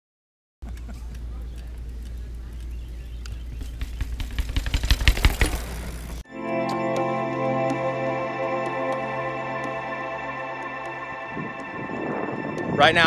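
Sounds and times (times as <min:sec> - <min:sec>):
ambient guitar music: 0:06.3 - 0:13.0.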